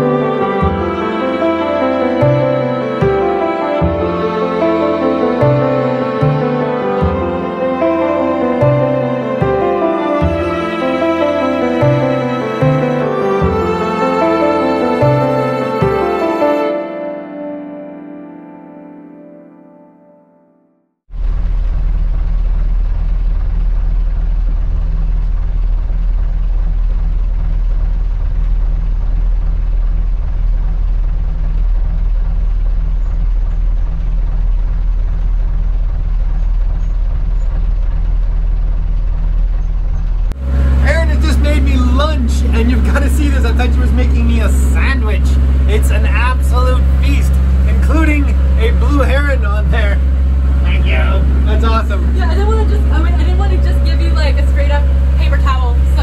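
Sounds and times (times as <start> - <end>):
boat engine drone: 0.0 - 56.0
voices: 40.7 - 56.0.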